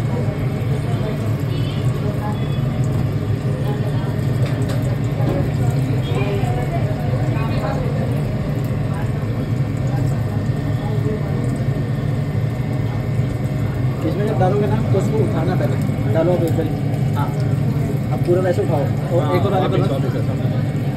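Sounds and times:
low mechanical hum: 0.0 - 20.9.

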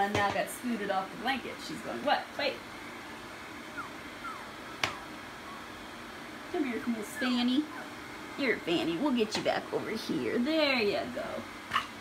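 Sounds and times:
steady low hum: 0.0 - 12.0
puppies squeaking: 3.7 - 5.7, 6.9 - 8.0.

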